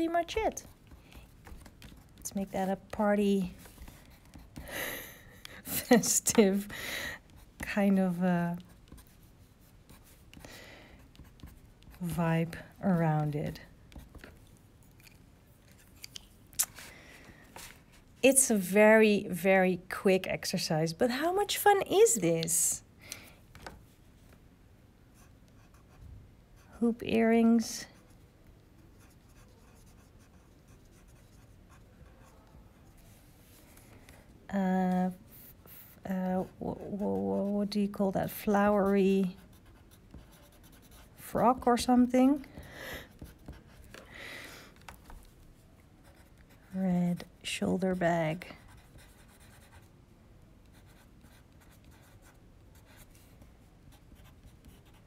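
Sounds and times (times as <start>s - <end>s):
colored pencil scratching on paper: 0.0s - 16.1s, 28.8s - 33.6s, 35.1s - 44.0s, 45.1s - 49.9s, 50.6s - 55.0s.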